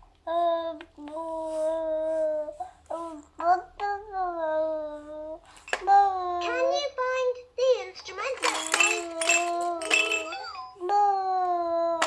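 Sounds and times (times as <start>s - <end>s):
baby making sing-song vowels: 0.3s - 6.7s.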